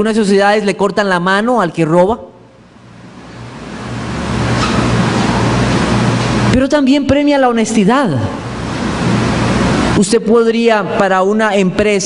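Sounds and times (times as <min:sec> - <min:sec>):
man speaking: 0:06.5 - 0:08.4.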